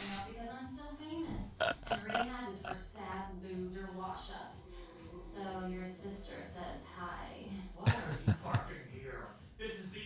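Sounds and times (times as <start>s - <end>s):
man laughing: 1.6s - 2.8s, 7.9s - 8.7s.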